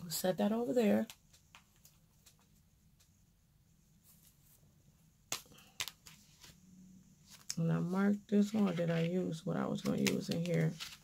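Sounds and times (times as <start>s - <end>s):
paper handling: 9.8s - 11.0s.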